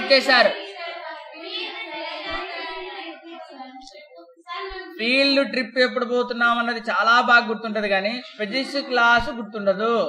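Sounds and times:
person lecturing: 0.0s - 0.6s, 5.0s - 10.0s.

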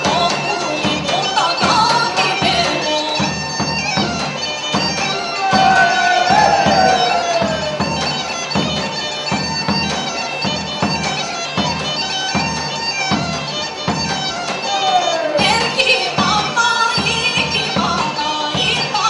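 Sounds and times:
regular beat: 0.0s - 17.8s
bagpipe folk dance tune: 0.0s - 19.0s.

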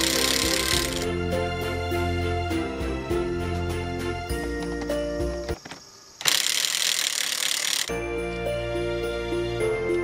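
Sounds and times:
hand ratchet clicking: 0.0s - 1.0s, 6.2s - 7.9s.

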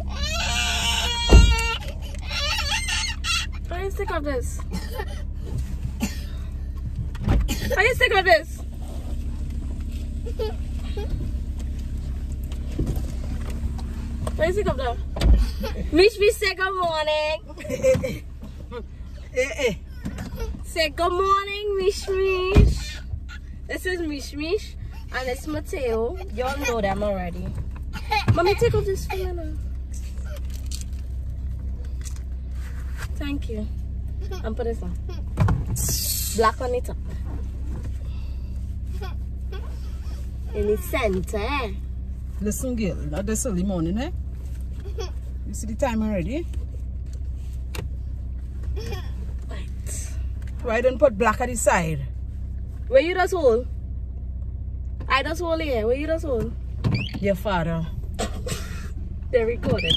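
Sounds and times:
car engine idling: 0.0s - 59.9s
person coughing: 58.2s - 58.9s.

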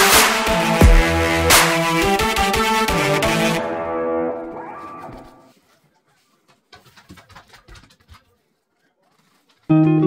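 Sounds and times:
background music: 0.0s - 5.4s, 9.7s - 10.0s
paper towel rubbing fabric: 8.1s - 9.7s.

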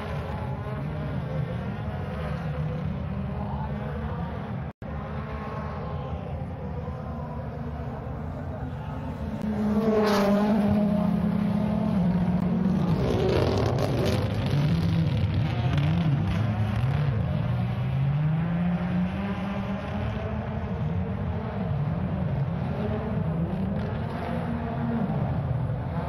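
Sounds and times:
rally car engine revving: 0.0s - 26.0s.

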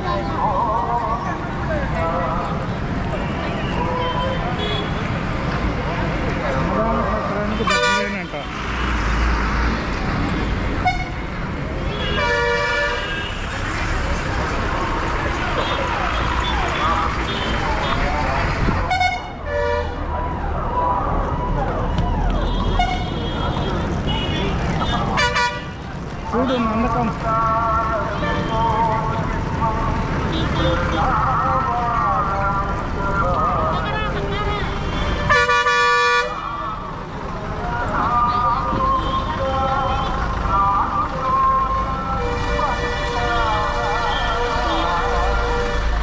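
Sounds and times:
crowd chatter: 0.0s - 46.0s
vehicle engines running: 0.0s - 46.0s
vehicle horn toots: 34.0s - 36.4s.

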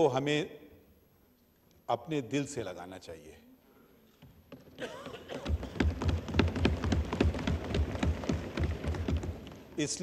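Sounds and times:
thumping on wooden desks: 4.5s - 9.8s
people clapping: 5.1s - 9.8s.

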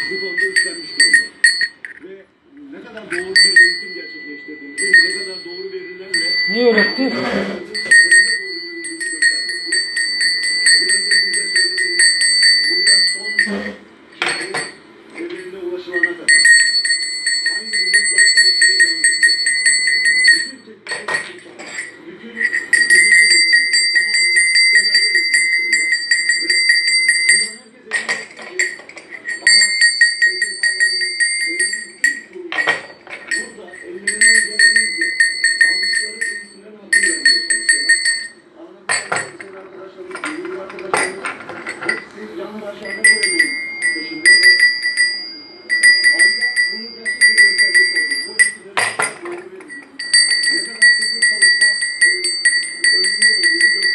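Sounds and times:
brass bell ringing: 0.0s - 1.9s, 3.1s - 39.5s, 42.8s - 53.9s.

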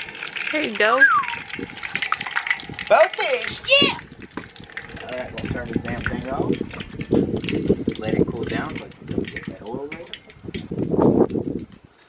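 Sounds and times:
people talking: 0.5s - 1.2s, 2.9s - 4.0s, 5.0s - 6.6s, 8.0s - 10.2s.

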